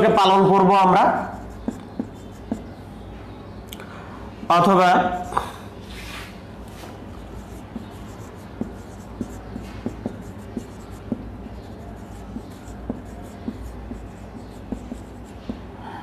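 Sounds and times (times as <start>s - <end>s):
marker pen writing on whiteboard: 0.0s - 2.8s, 7.1s - 15.9s
steady low hum: 0.0s - 16.0s.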